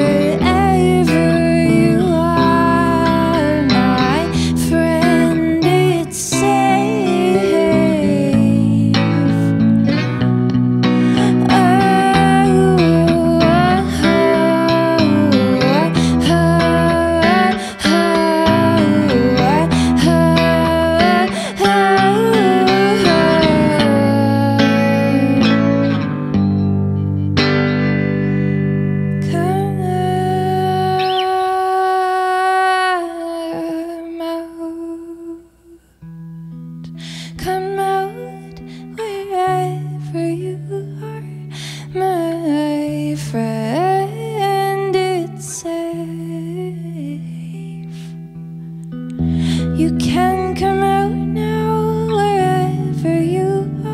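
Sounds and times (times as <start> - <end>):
woman singing long notes: 0.0 - 10.0, 11.0 - 25.9, 29.2 - 35.9
electric guitar: 0.0 - 53.9.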